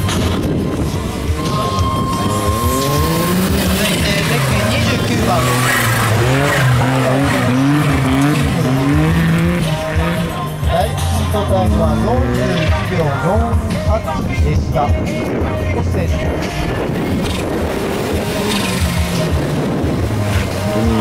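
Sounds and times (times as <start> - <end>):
small engine revving: 1.3 - 10.4, 17.1 - 21.0.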